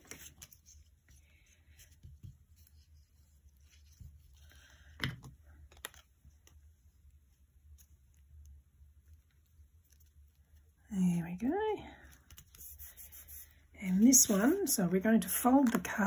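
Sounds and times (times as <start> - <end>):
paper rustling: 0.0 - 4.6.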